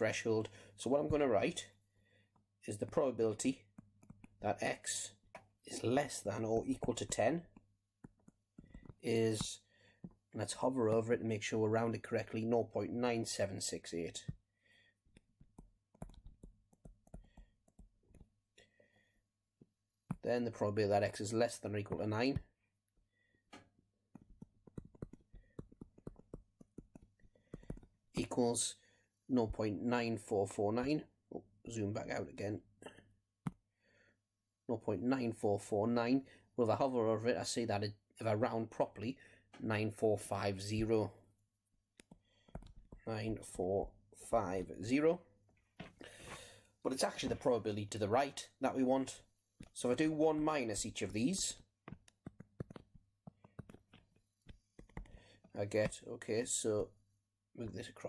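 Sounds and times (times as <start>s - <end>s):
stylus tapping tablet screen: 2.3s - 11.3s, 14.1s - 20.3s, 21.8s - 28.4s, 41.6s - 43.1s, 49.0s - 56.1s.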